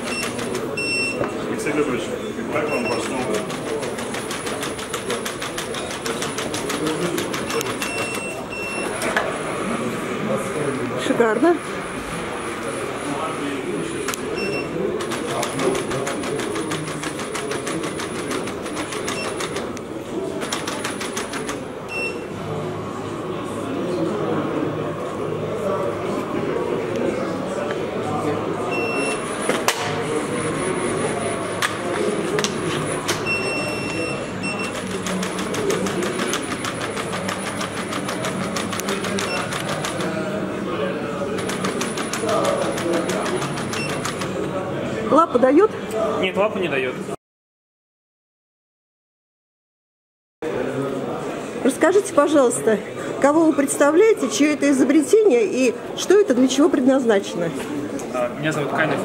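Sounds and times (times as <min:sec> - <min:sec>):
indistinct background voices: 0:00.0 - 0:46.4.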